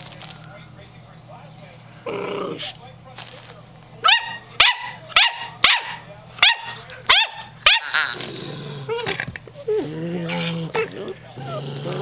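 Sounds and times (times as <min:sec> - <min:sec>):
puppy yipping: 0:04.0 - 0:08.1.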